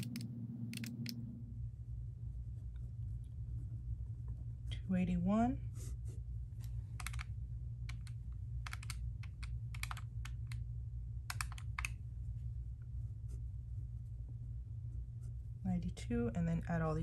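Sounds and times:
low hum: 0:00.0 - 0:17.0
calculator key clicks: 0:07.9 - 0:10.6, 0:11.3 - 0:11.9.

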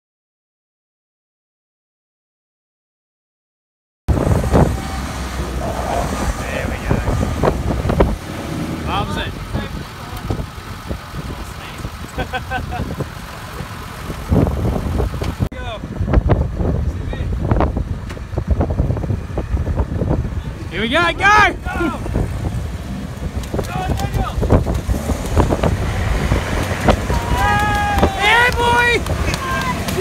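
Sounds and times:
vehicle engine idling: 0:04.1 - 0:30.0
indistinct voices: 0:04.3 - 0:12.0.

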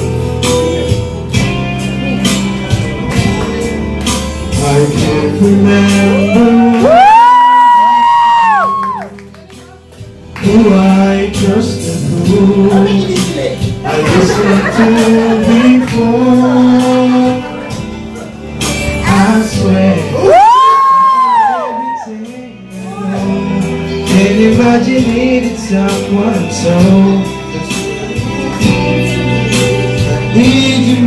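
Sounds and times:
backing track: 0:00.0 - 0:31.0
person whooping: 0:06.1 - 0:09.1, 0:20.2 - 0:22.2.

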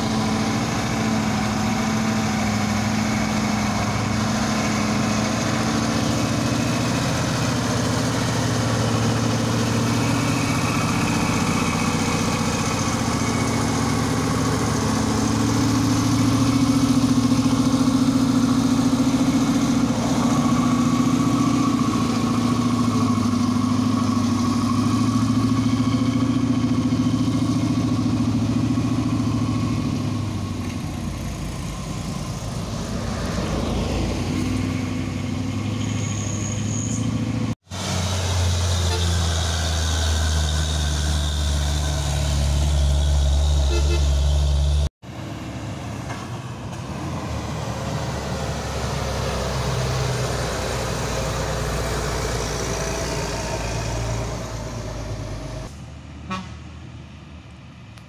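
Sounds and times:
truck diesel engine labouring: 0:00.0 - 0:58.0.

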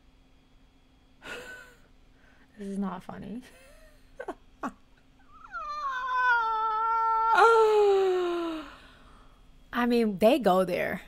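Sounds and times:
person wailing high-pitched: 0:05.4 - 0:08.6.

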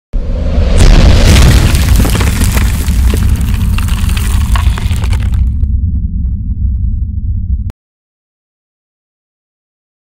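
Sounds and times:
deep sustained rumble: 0:00.4 - 0:07.7
crackling debris: 0:00.8 - 0:05.7.

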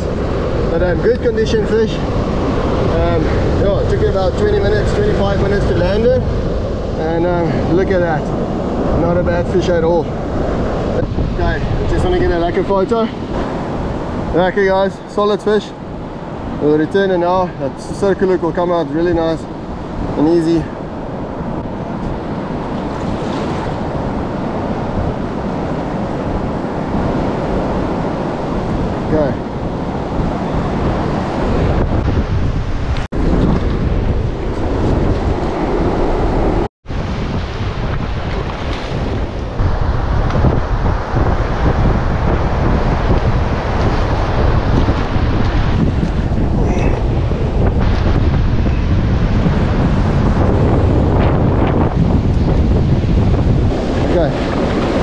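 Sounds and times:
surf breaking on beach: 0:00.0 - 0:55.0
wind buffeting microphone: 0:00.0 - 0:55.0.

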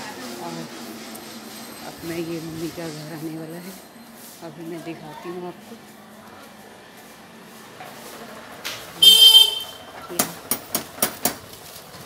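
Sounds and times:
vehicle horn toot: 0:09.0 - 0:10.0.

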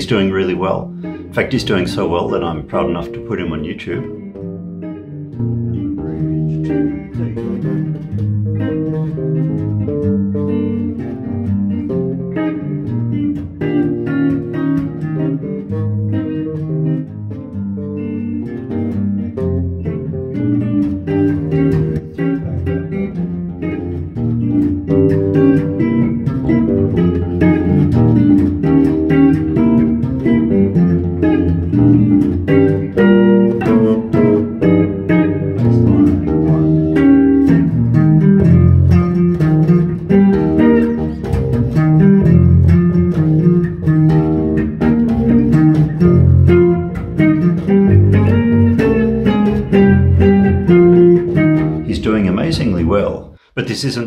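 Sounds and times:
electric bass walking line: 0:00.0 - 0:53.3
archtop guitar playing bebop: 0:00.0 - 0:54.0.

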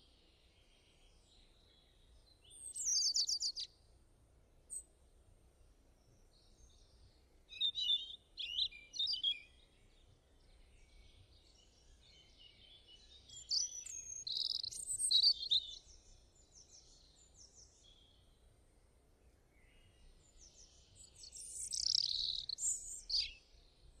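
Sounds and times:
small birds chirping: 0:00.3 - 0:03.8, 0:04.7 - 0:04.9, 0:06.0 - 0:18.5, 0:19.3 - 0:24.0.

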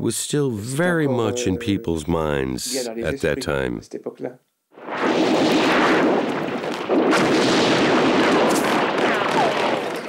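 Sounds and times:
artillery explosions: 0:04.8 - 0:10.0
sharp blast: 0:04.8 - 0:10.0
continuous gunfire: 0:04.9 - 0:10.0.

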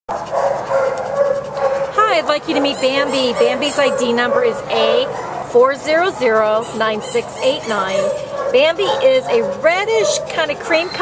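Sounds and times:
dog howling call: 0:02.6 - 0:11.0.

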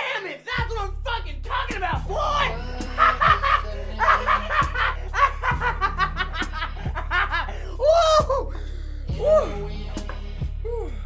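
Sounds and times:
background music: 0:00.0 - 0:11.0
man laughing loudly: 0:02.1 - 0:08.6.

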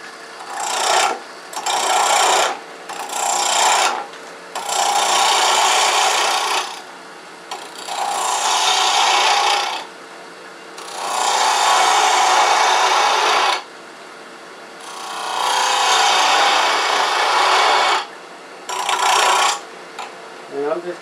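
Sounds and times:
lathe running: 0:00.4 - 0:04.0, 0:04.6 - 0:06.9, 0:07.5 - 0:09.9, 0:10.8 - 0:13.6, 0:14.8 - 0:18.1, 0:18.7 - 0:20.1
gouge cutting wood on lathe: 0:00.4 - 0:06.9, 0:07.5 - 0:09.9, 0:10.8 - 0:13.7, 0:14.8 - 0:19.6.

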